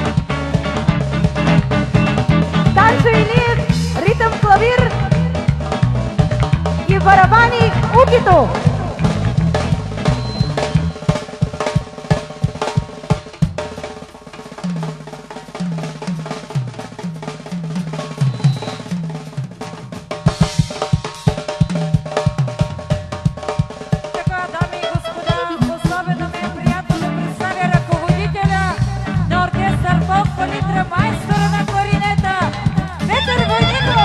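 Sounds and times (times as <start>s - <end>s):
bass line: 0.0s - 11.2s, 25.6s - 34.0s
drum kit playing fast rhythm: 0.0s - 34.0s.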